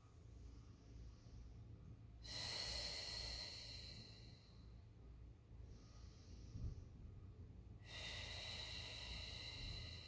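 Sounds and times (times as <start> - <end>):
faint long exhale: 7.8 - 10.0.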